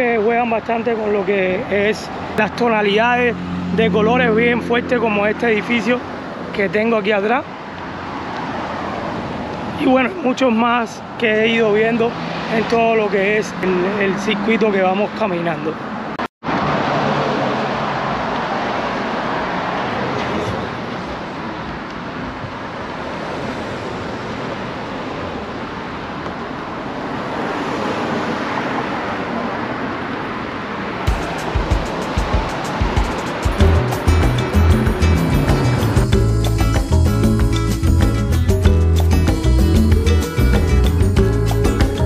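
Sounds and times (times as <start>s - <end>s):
road traffic rushing: 0.0s - 42.0s
background music with a beat: 31.1s - 42.0s.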